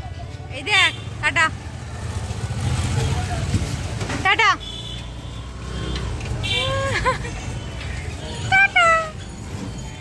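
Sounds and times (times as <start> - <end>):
motorcycle engine passing: 1.5 - 3.9.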